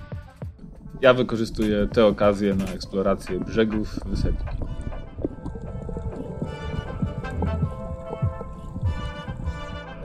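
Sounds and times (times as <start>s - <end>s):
background music with held tones: 0.0s - 10.0s.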